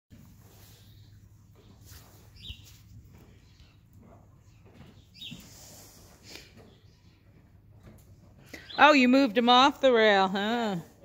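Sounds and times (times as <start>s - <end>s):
small bird chirping: 2.3s - 2.8s, 5.0s - 5.5s.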